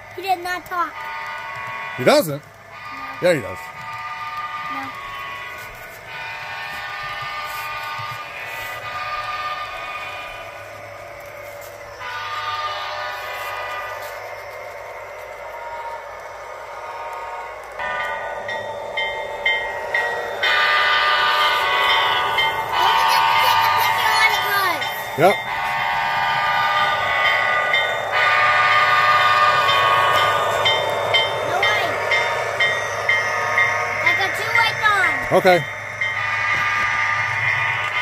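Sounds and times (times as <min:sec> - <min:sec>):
model train horn from speaker: 0:12.0 - 0:14.1.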